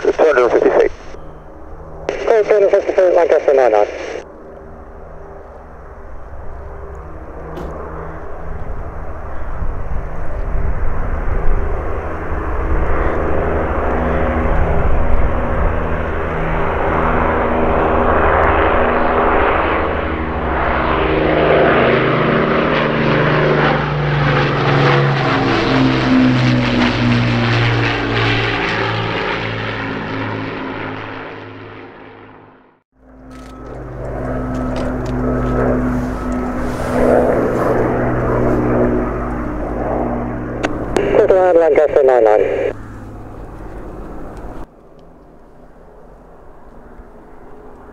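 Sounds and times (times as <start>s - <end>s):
propeller plane engines droning: 0.0s - 47.9s.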